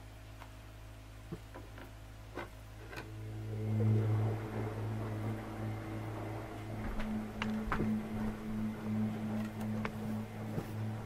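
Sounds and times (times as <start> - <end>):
low motor hum: 0.8 - 11.0.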